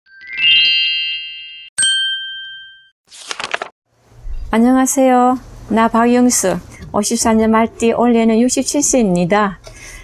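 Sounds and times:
bell-like ding: 0.1s - 3.0s.

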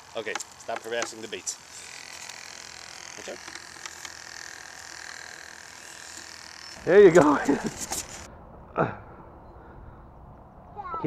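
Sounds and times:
air pump buzzing and whining: 0.0s - 8.3s.

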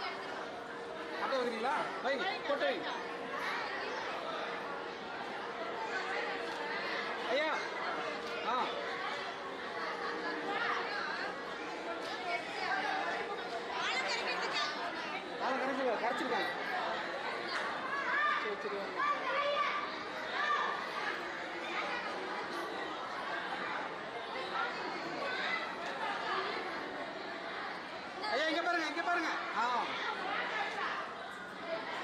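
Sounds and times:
crowd chattering: 0.0s - 32.0s.

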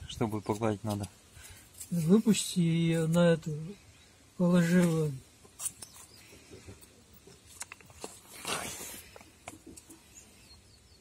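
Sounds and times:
plastic cup rustling scrape: 7.9s - 9.2s.

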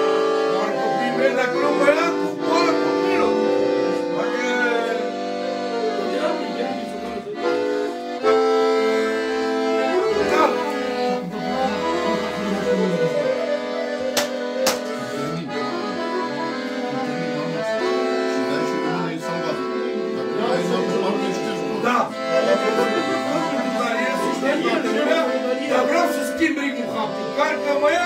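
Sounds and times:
accordion playing chords: 0.0s - 28.0s.

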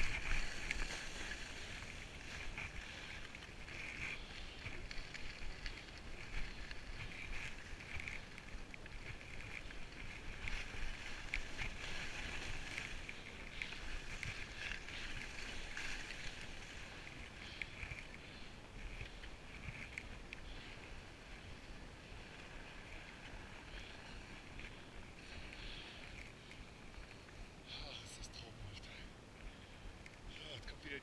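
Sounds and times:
wind rumble on microphone: 0.0s - 25.5s
skis scraping over snow: 0.0s - 27.4s.

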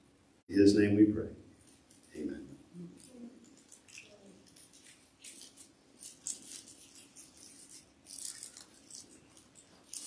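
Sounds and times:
thin plastic crinkling and clicking: 3.0s - 10.0s.

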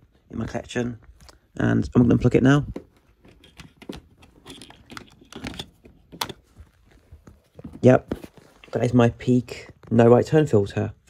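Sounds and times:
cables being handled: 0.0s - 10.5s.

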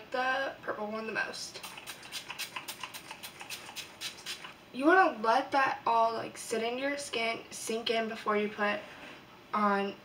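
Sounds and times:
spray bottle hissing sprays: 1.6s - 4.6s.

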